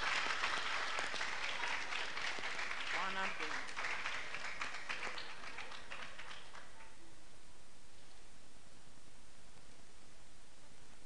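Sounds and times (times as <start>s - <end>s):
audience applause: 0.0s - 7.0s.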